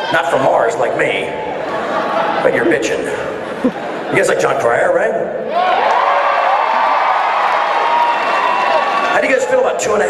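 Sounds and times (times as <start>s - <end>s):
audience cheering and shouting: 5.5s - 10.0s.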